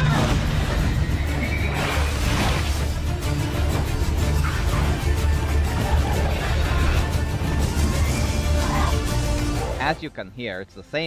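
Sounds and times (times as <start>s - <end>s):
epic orchestral theme: 0.0s - 11.0s.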